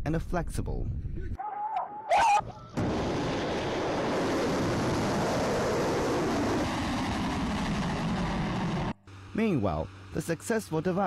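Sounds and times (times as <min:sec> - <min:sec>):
rocket motor roar: 0:03.5 - 0:10.2.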